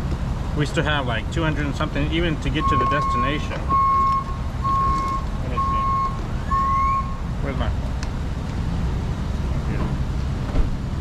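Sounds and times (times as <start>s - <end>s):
electronic beeper: 2.6s - 7.2s.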